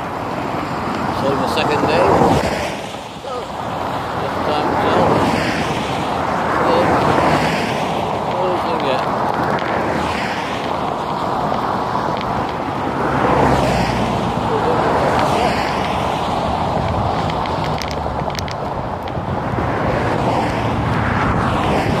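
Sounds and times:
cars passing: 0:00.0 - 0:22.0
road traffic rushing: 0:00.0 - 0:22.0
wind on microphone: 0:00.0 - 0:22.0
sharp clicks: 0:16.8 - 0:19.2.

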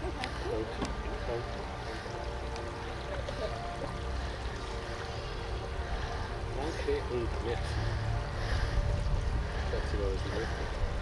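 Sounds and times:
wind buffeting microphone: 0:08.1 - 0:11.0.

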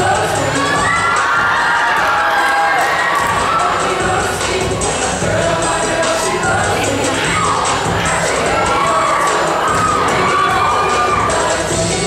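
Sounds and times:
choir singing with accompaniment: 0:00.0 - 0:12.0
crowd cheering and shouting: 0:00.0 - 0:12.0.

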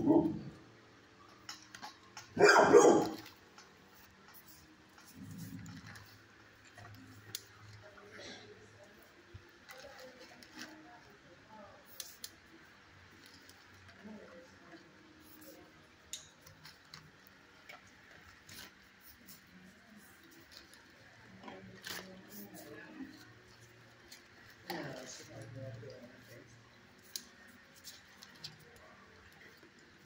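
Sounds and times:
faint indistinct voices: 0:00.0 - 0:30.0.

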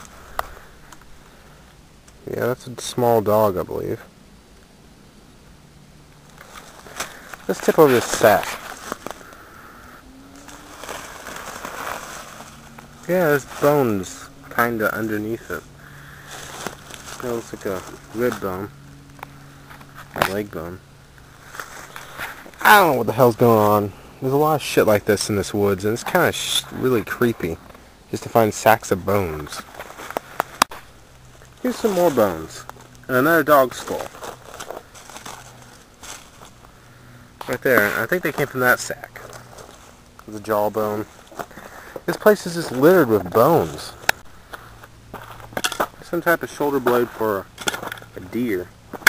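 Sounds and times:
footsteps on dry pine needles: 0:06.2 - 0:24.4, 0:28.6 - 0:49.0
plastic sack and leaves rustling: 0:06.2 - 0:49.0.

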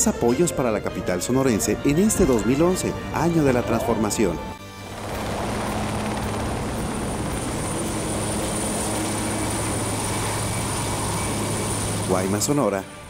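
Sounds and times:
helicopter engine drone: 0:02.9 - 0:13.0
high turbine whine: 0:04.6 - 0:13.0.

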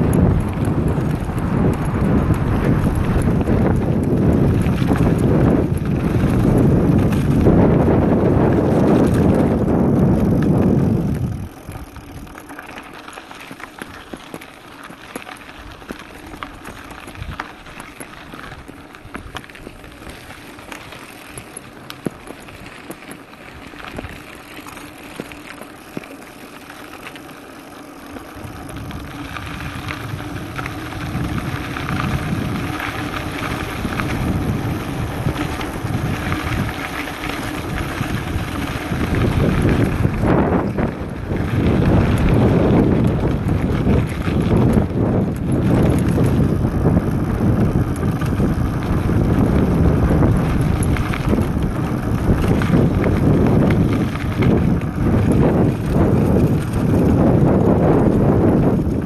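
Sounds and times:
wind rushing over microphone: 0:00.0 - 0:12.3, 0:28.3 - 0:59.0
bike rattling over bumps: 0:00.0 - 0:59.0
tyres on gravel road: 0:00.0 - 0:59.0.

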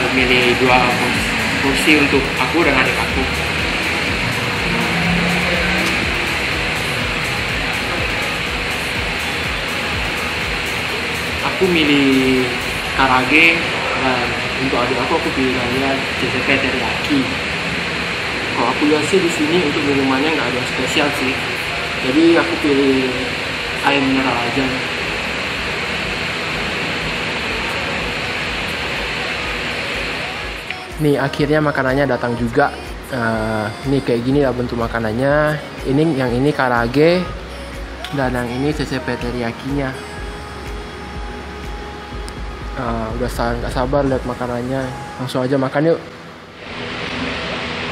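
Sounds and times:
faint music: 0:00.0 - 0:47.9
steady background hiss: 0:00.0 - 0:47.9.

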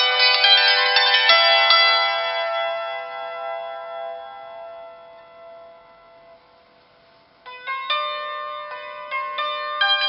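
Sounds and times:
hammered dulcimer strings ringing: 0:00.0 - 0:06.4, 0:07.5 - 0:10.0.

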